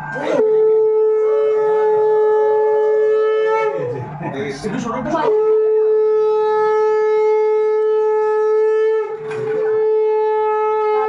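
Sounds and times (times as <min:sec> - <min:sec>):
conch shell blasts: 0:00.3 - 0:03.9, 0:05.3 - 0:11.0.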